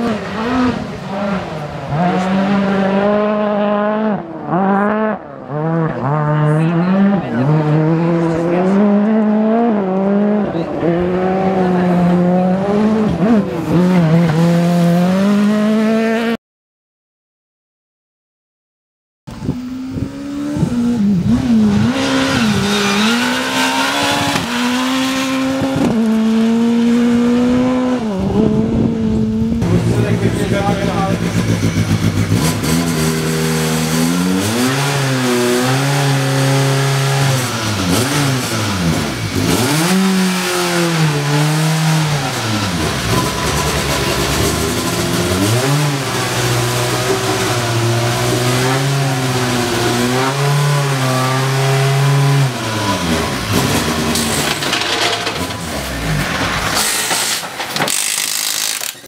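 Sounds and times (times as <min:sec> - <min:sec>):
rally car engine revving: 0:00.0 - 0:16.4, 0:19.3 - 0:57.6.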